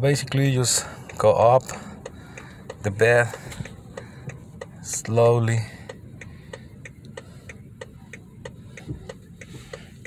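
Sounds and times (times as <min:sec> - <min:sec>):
hazard light indicator ticking: 0:00.3 - 0:10.0.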